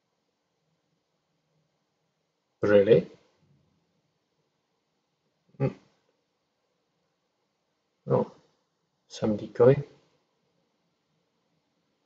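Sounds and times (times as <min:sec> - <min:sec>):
man murmuring: 0:05.6 - 0:05.8.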